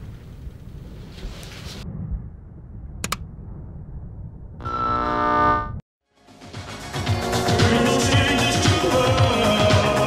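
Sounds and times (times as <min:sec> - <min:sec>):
buzzing horn-like tone: 0:04.6 - 0:05.8.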